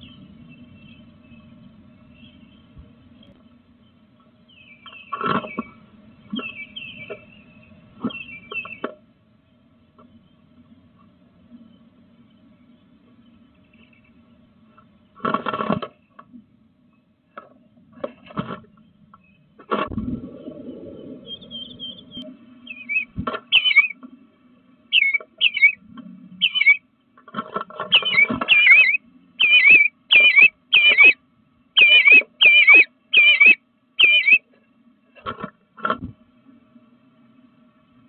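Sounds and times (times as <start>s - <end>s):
bird calling wavering note: 20.4s - 24.0s, 24.9s - 25.8s, 26.4s - 26.8s, 27.9s - 31.2s, 31.8s - 34.5s.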